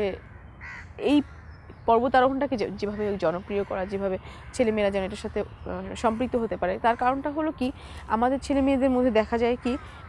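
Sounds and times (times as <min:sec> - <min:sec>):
crow cawing: 0:00.2 - 0:01.5.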